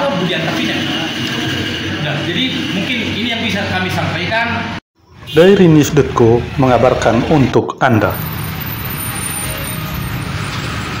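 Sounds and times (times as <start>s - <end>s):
road traffic with engines humming: 0.0s - 11.0s.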